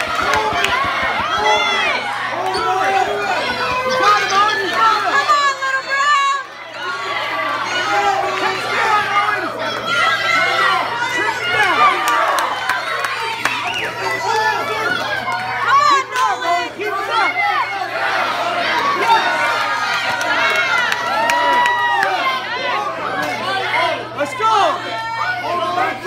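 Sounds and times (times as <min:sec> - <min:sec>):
spectators shouting and cheering: 0:00.0 - 0:26.0.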